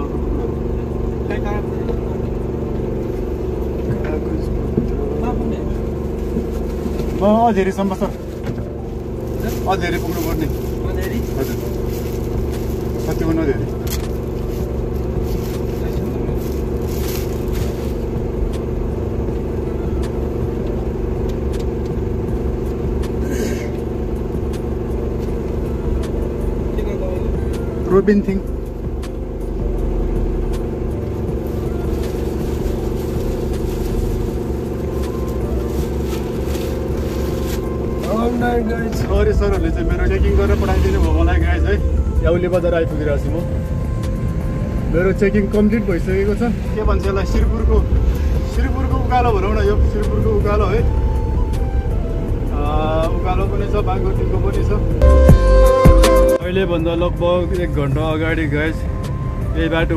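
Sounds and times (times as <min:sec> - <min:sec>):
car engine humming: 0:00.0 - 0:59.9.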